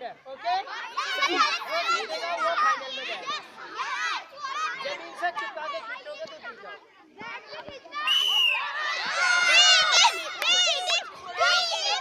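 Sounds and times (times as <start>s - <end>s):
children shouting and cheering: 0.6s - 12.0s.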